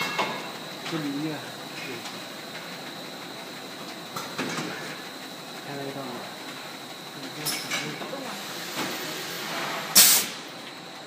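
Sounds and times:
packing machine hum and whine: 0.0 - 11.0.

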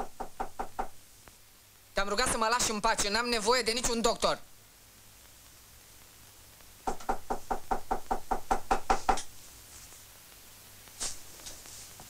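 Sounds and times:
knuckles knocking on door: 0.0 - 1.0, 6.9 - 9.3.

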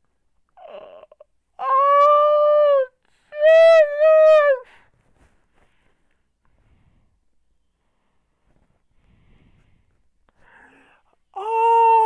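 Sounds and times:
man wailing: 11.4 - 12.0.

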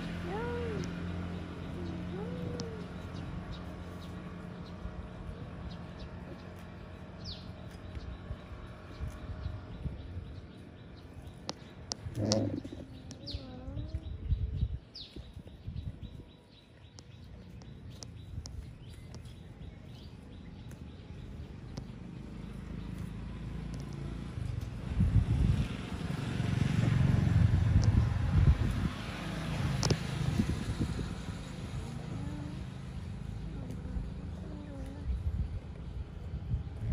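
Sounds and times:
motor vehicle passing by: 0.0 - 36.9.

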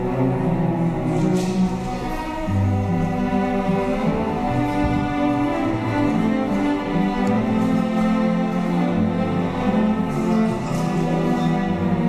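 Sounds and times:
cellos bowing sustained notes: 0.0 - 12.0
string orchestra playing: 0.0 - 12.0.

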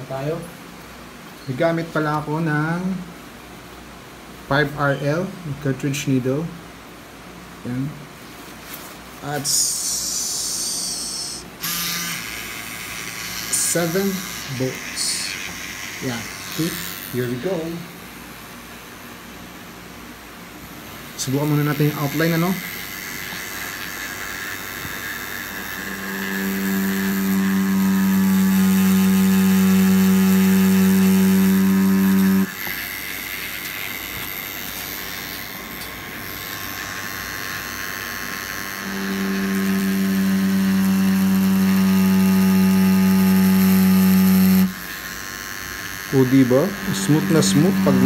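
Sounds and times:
tattoo machine buzzing: 9.4 - 19.4, 20.9 - 48.0.

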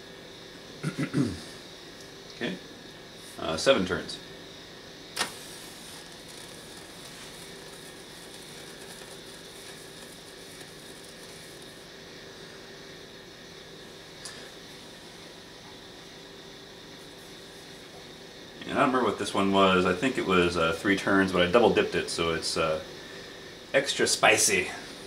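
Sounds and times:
low background hum: 0.0 - 25.0
sharp electrical click: 5.1 - 11.7.

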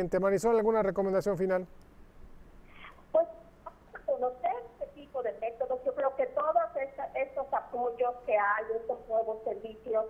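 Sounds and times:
woman speaking over phone: 3.9 - 10.0.

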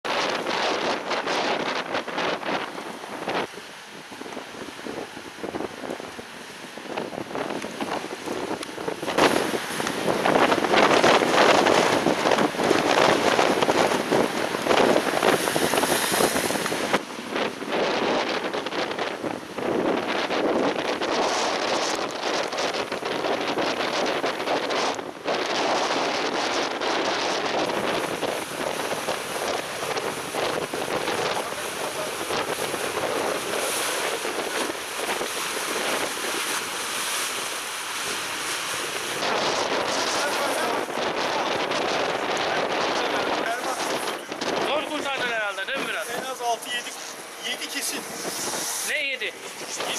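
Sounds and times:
strong wind across microphone: 0.0 - 49.9
waves breaking: 0.0 - 49.9.

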